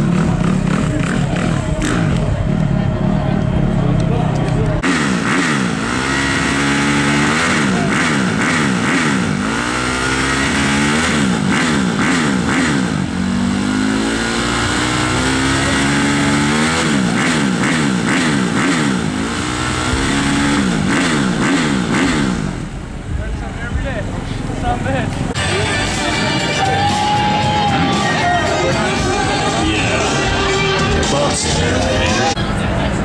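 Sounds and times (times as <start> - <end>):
motorbike engine revving: 0.0 - 33.0.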